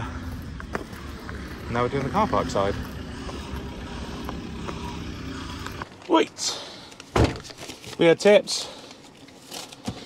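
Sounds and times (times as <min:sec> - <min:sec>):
diesel engine running: 0:00.0 - 0:05.9.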